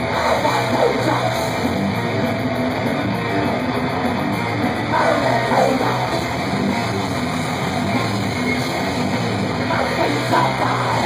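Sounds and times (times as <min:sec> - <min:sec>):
distorted electric guitars: 0:00.0 - 0:11.0
live metal band playing loud: 0:00.0 - 0:11.0.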